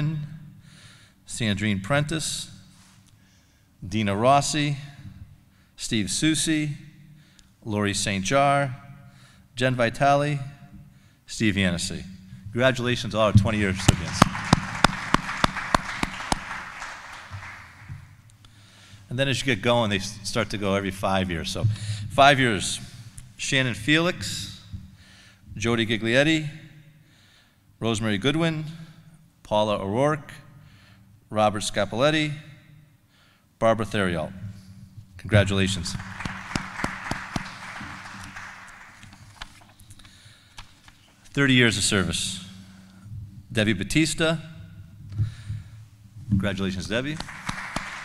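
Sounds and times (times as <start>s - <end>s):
loud close hand claps: 13.5s - 18.2s, 35.7s - 39.7s, 47.0s - 48.0s
small audience applause: 13.6s - 18.1s, 35.7s - 39.7s, 47.0s - 48.0s.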